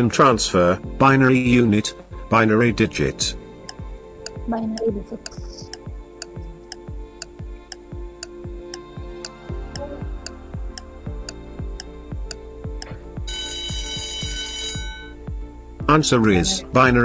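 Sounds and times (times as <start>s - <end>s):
background music: 0.0s - 17.0s
clock ticking: 3.7s - 15.1s
alarm clock ringing: 13.3s - 15.2s.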